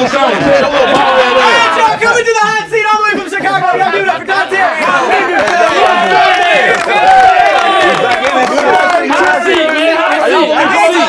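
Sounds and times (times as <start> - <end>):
men talking over one another: 0.0 - 11.0.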